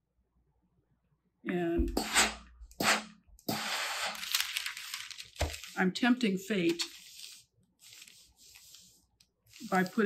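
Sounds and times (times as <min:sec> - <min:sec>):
parchment paper rustling: 0:03.9 - 0:10.0.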